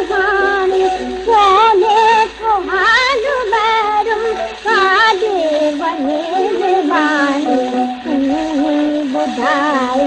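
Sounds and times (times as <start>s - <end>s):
person singing ornamented melody: 0.0s - 10.0s.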